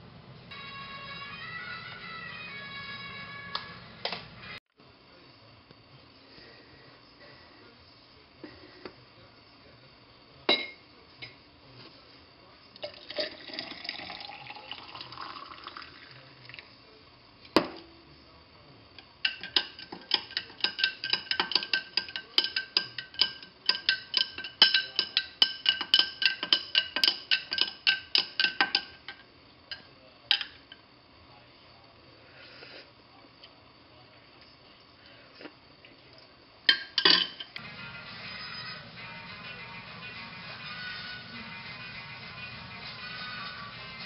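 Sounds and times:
spoon clinking against glass: 10.5 - 10.8, 19.2 - 30.8, 36.7 - 37.6
coffee pouring into glass: 12.8 - 16.7.

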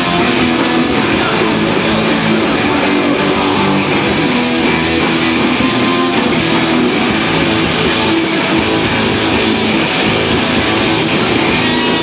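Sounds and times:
noise-rock band playing live: 0.0 - 12.0.

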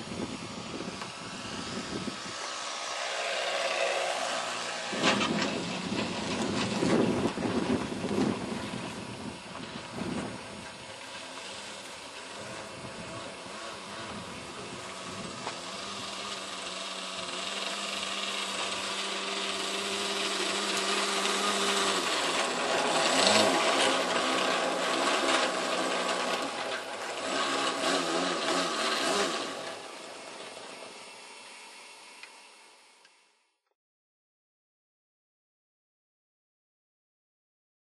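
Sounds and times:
model aircraft engine: 0.0 - 33.6.

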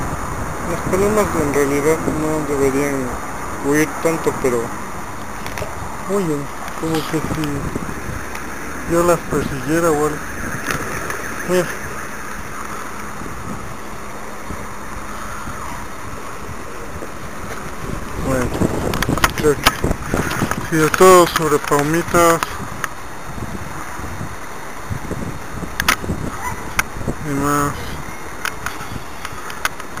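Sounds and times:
outdoor background noise: 0.0 - 30.0
wind rushing over microphone: 0.0 - 30.0.

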